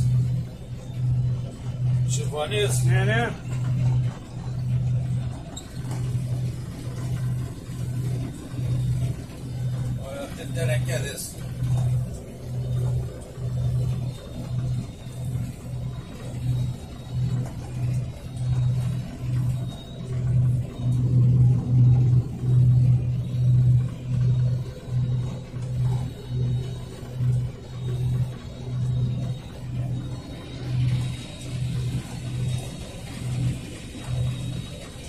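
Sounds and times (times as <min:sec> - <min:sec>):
combine harvester pulsing hum: 0:00.0 - 0:35.0.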